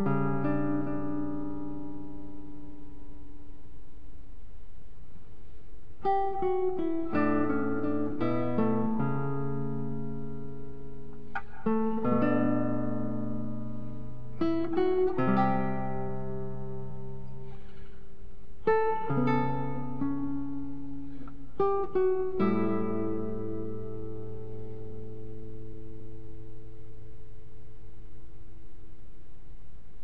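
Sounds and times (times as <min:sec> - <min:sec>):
classical guitar melody: 0:00.0 - 0:03.8, 0:05.4 - 0:29.0.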